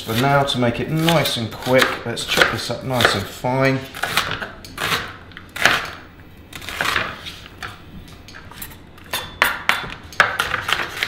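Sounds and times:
knife chopping on wooden board: 1.0s - 3.3s.

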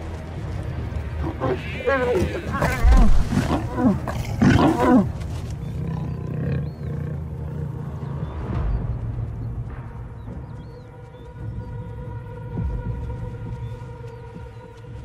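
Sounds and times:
low background music: 0.0s - 15.0s
lions snarling and growling: 1.2s - 8.4s.

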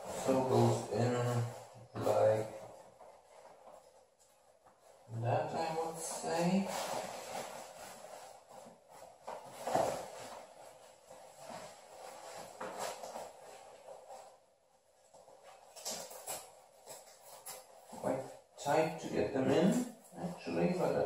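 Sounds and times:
textile trousers rustling and rubbing: 0.0s - 18.6s.

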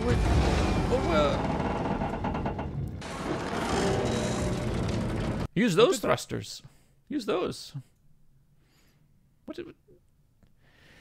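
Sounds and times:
dense rumble with rattling: 0.0s - 5.5s
film score music: 0.0s - 5.5s.

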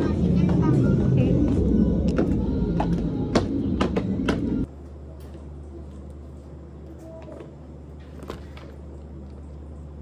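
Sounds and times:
people talking: 0.0s - 1.7s.

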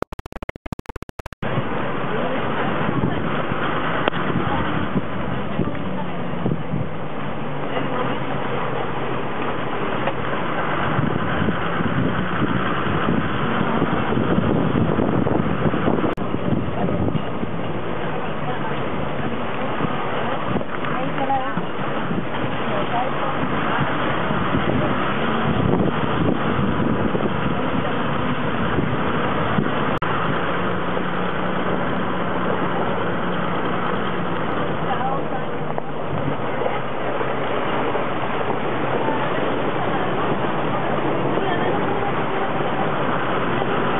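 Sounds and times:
vehicle engine drone: 0.0s - 43.9s
rushing wind noise: 1.4s - 43.9s.

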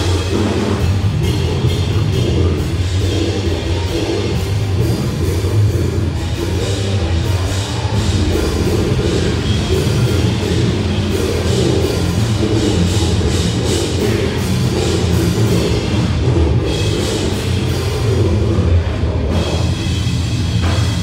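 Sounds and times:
death metal band playing live: 0.0s - 21.0s
rapid drum and cymbal strikes: 0.0s - 21.0s.

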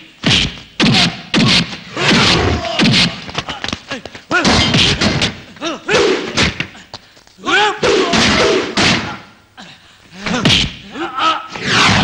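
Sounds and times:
heavy blows and thuds: 0.2s - 3.6s, 7.9s - 9.2s
shouted grunts: 5.6s - 6.8s, 7.4s - 12.0s.

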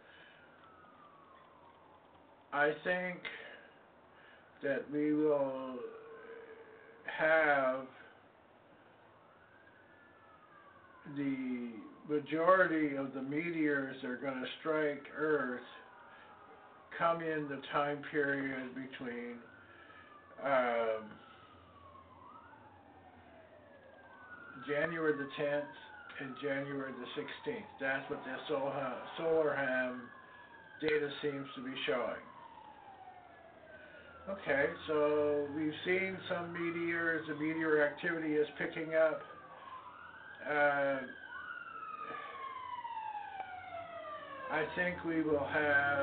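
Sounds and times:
faint wailing siren: 0.0s - 46.0s.

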